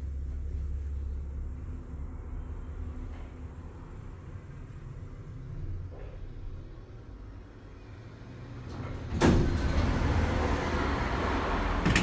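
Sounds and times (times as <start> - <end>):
elevator doors sliding: 8.5 - 12.0
elevator door clunk: 8.8 - 10.1, 11.8 - 12.0.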